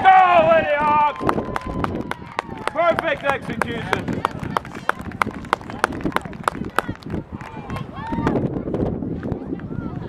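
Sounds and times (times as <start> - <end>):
rhythmic hand clapping: 1.2 - 7.9.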